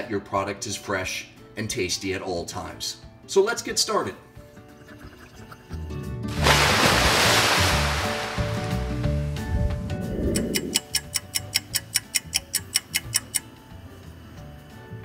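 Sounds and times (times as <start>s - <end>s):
background music: 0.0s - 15.0s
light ticks: 10.3s - 13.5s.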